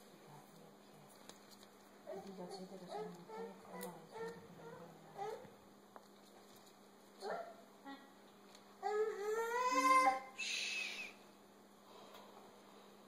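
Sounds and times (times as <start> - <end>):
breathy hiss: 10.4 - 11.2.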